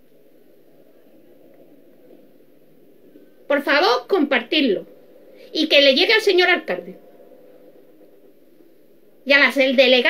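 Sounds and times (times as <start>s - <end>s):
person speaking: 3.5s - 7.1s.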